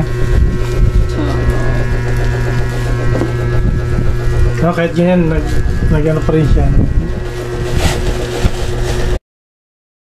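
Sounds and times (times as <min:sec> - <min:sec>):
small motor humming: 0:00.0 - 0:09.2.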